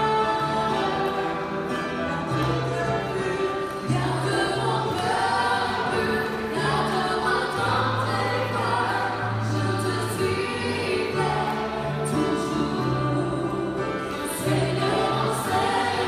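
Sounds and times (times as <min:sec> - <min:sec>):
women singing worship song: 0:00.0 - 0:16.0.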